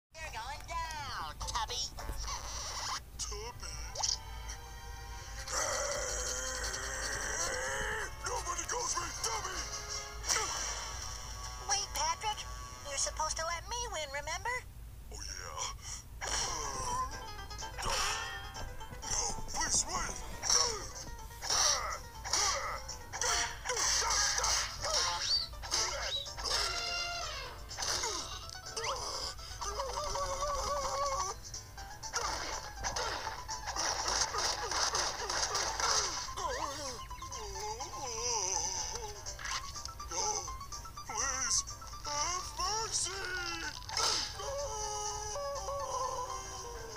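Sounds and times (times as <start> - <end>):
cartoon soundtrack music: 0.9 - 14.0, 16.2 - 46.9
cartoon pitched vocal sound: 15.1 - 18.4, 19.0 - 31.4, 41.1 - 46.9
short falling squeaks and cries: 23.2 - 29.0.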